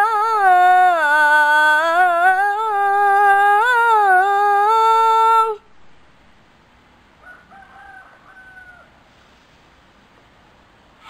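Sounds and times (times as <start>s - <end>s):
background hiss: 0.0s - 11.0s
faint rooster crowing: 7.2s - 9.4s.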